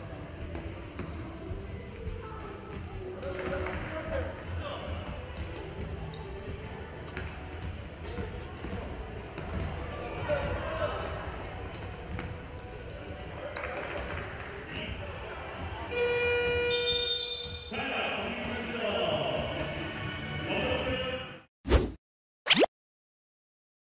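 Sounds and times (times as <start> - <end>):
shoe squeaks: 0.0 - 3.3, 5.2 - 8.4, 10.8 - 13.6, 15.1 - 17.8
basketball bouncing: 9.4 - 9.8.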